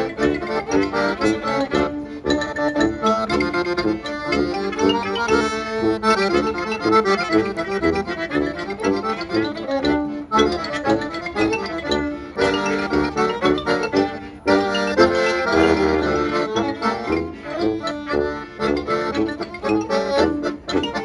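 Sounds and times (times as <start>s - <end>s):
accordion: 0.0s - 21.0s
band playing lively tune: 0.0s - 21.0s.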